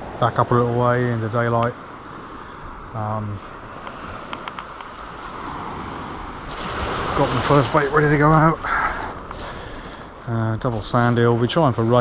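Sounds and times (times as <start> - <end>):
sea on shingle beach: 0.0 - 12.0
wind: 0.0 - 12.0.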